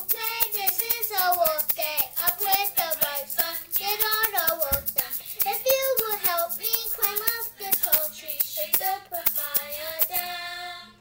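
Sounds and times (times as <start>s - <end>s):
handheld shaker beats: 0.0s - 10.4s
child singing: 0.0s - 11.0s.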